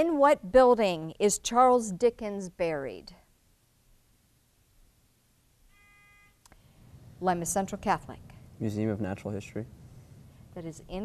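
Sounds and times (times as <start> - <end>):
electronic buzzer beep: 5.7 - 6.4.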